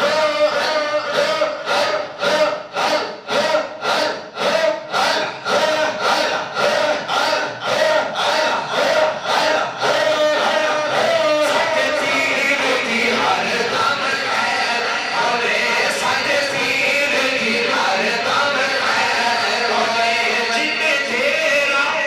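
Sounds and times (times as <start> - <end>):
crowd chanting: 0.0 - 22.0
man chanting into a microphone: 0.0 - 22.0.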